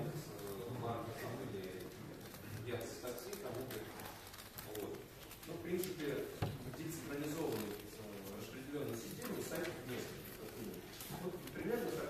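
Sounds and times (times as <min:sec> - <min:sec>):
man speaking in echoing hall: 0:00.0 - 0:12.0.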